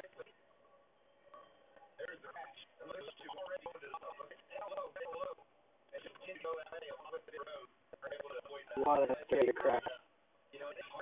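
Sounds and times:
muffled television speech: 0.0s - 11.0s.

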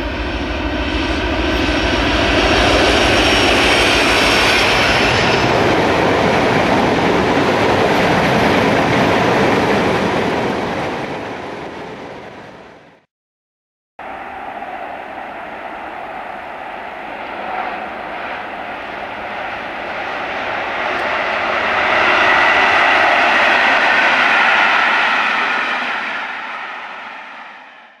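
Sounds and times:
electric locomotive running: 0.0s - 11.8s, 14.0s - 27.8s.

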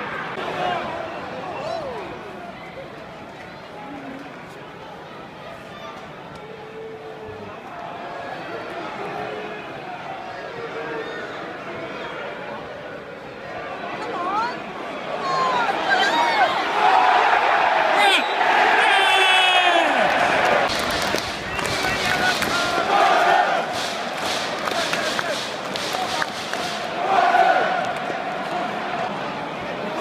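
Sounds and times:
stadium crowd murmur: 0.0s - 30.0s.

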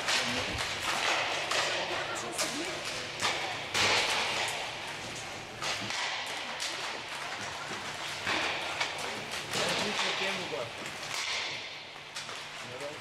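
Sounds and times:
pucks knocking off sticks and boards: 0.0s - 12.5s
rink background noise: 0.0s - 13.0s.

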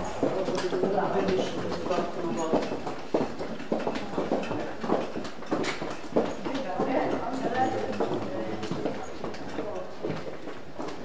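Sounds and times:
indistinct conversation: 0.0s - 10.9s
footsteps on hard floor: 0.0s - 11.0s
shoe clicks: 0.0s - 11.0s.

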